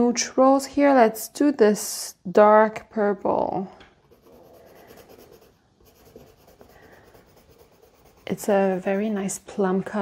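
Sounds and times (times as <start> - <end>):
pencil scratching on paper: 4.0 - 10.0.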